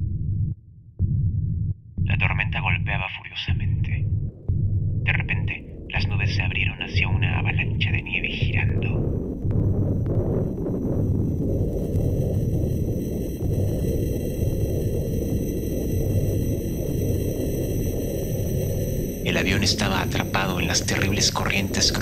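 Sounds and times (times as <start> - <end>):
storm rumble: 3.4 - 22.0.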